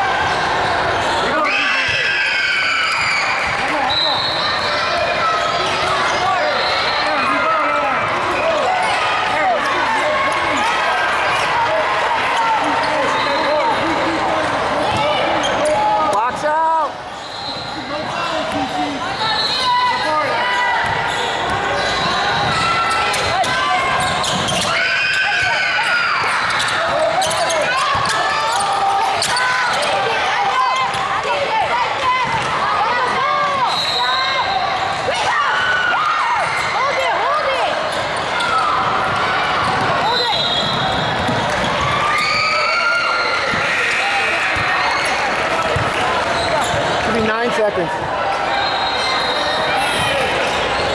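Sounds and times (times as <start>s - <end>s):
voices talking and calling out: 0.0s - 50.9s.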